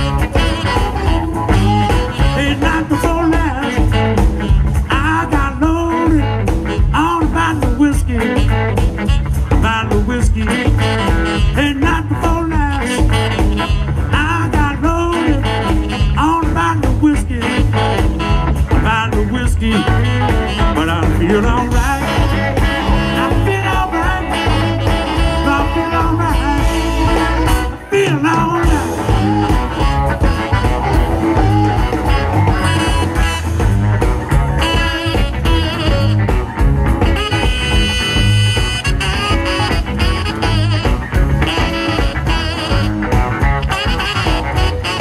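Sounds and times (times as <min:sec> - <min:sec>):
saxophone solo: 0:00.0 - 0:07.5, 0:08.2 - 0:09.8, 0:10.4 - 0:18.9, 0:19.6 - 0:45.0
drums keeping a steady beat: 0:00.0 - 0:45.0
electric bass: 0:00.0 - 0:45.0
electric guitar: 0:00.0 - 0:45.0.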